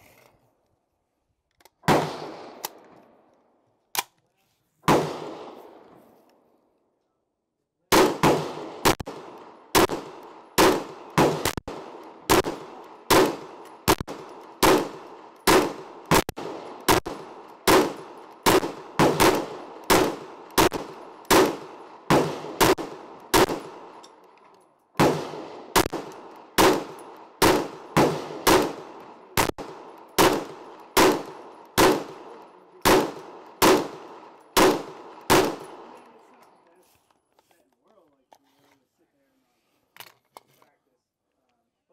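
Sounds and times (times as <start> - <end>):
semi-automatic gunshots with echo: 1.8 - 3.2, 4.8 - 6.0, 7.9 - 24.1, 25.0 - 36.1.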